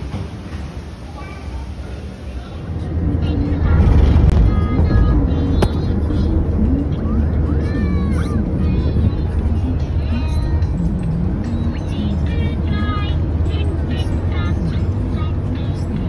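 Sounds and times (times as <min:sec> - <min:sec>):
car rumble from inside cabin: 0:02.3 - 0:16.0.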